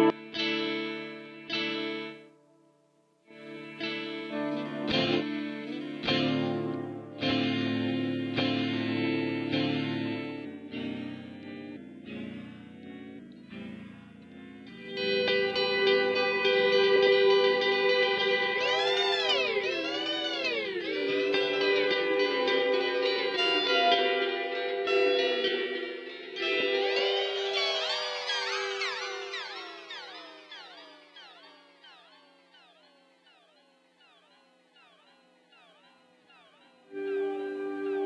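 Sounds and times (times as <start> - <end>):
electric guitar with warbling delay: 0.0 - 2.4, 3.3 - 38.0.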